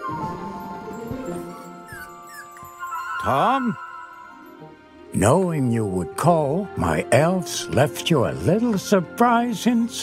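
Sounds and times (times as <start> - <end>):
soft background music: 0.0 - 10.0
puppy whimpering: 1.8 - 3.0.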